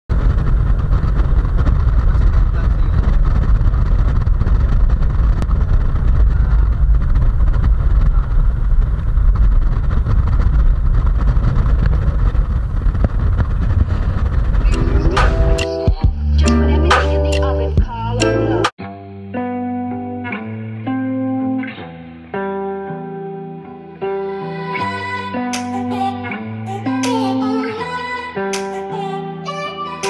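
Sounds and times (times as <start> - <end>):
car interior rumble: 0.1 - 18.7.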